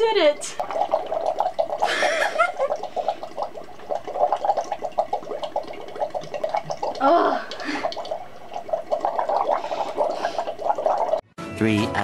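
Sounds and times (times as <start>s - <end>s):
bubbling through straws in water: 0.0s - 11.2s.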